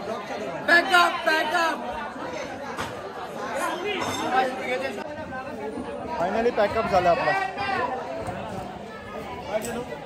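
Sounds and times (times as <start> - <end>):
people chattering: 0.0 - 10.0.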